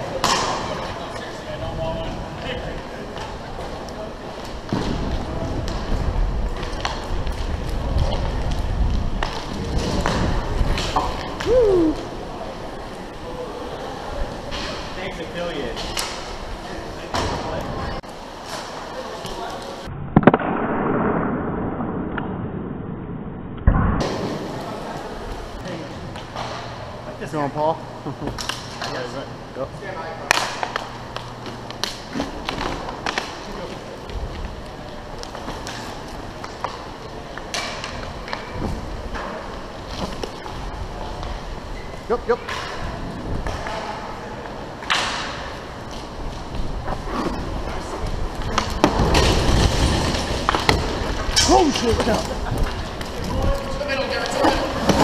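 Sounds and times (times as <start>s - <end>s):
skate wheels rolling: 0.0s - 19.9s, 24.0s - 27.2s, 28.1s - 55.0s.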